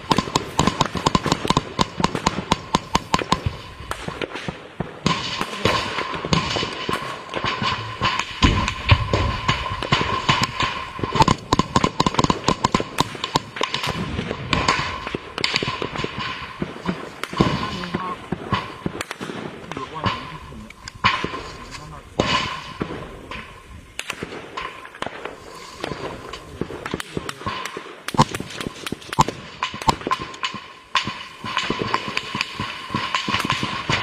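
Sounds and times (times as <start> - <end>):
rifle shots: 0.0 - 34.0
men's voices: 16.9 - 18.4, 19.6 - 23.4.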